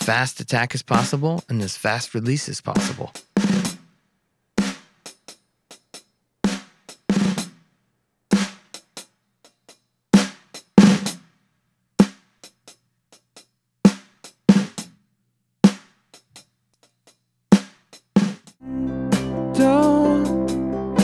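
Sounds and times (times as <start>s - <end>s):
loud snare drum hits: 10.2s - 11.2s.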